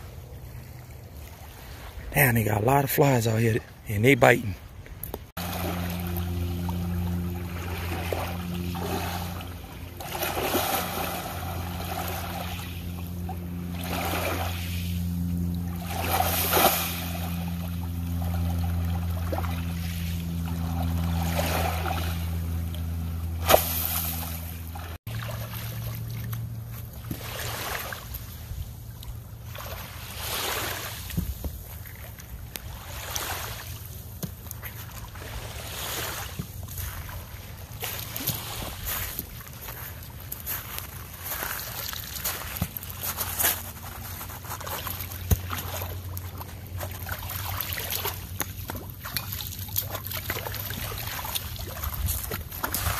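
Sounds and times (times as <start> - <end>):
steady low hum: 0.0 - 52.9
water splashing and sloshing: 0.0 - 52.9.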